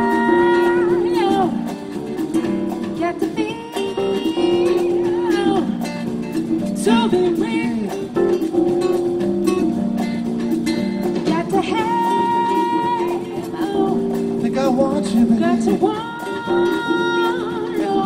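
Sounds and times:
person singing with vibrato: 0.0 - 2.2, 3.0 - 6.1, 6.8 - 8.2, 11.3 - 18.0
congas: 0.0 - 18.0
keyboard: 0.0 - 18.0
strummed acoustic guitar: 0.0 - 18.0
upright bass: 0.0 - 18.0.

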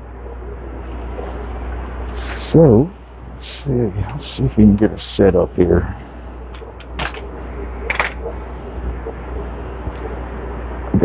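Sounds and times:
air pump humming: 0.0 - 11.0.

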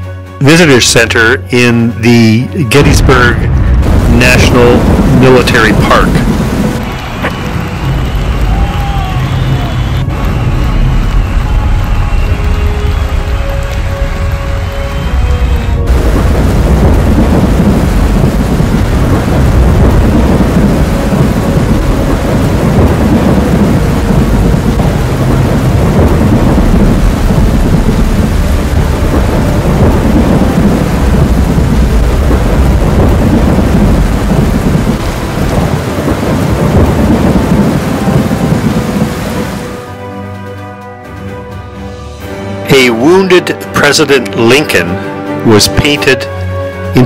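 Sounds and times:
loud continuous low rumble: 2.6 - 40.0.

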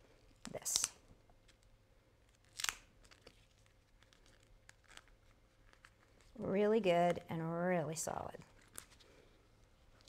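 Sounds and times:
duct tape crackle: 0.4 - 6.4, 8.5 - 9.1.

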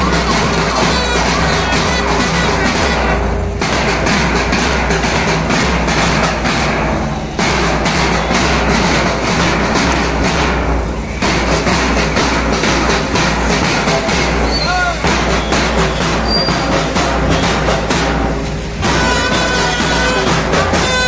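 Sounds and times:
drum band playing: 0.0 - 21.0.

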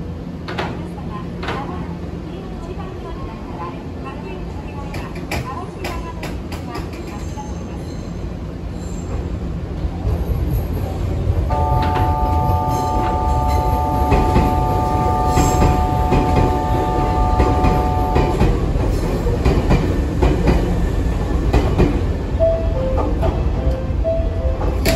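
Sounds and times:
steady chord of high tones: 11.5 - 18.4
train wheels clacking over rail joints: 17.4 - 22.1.

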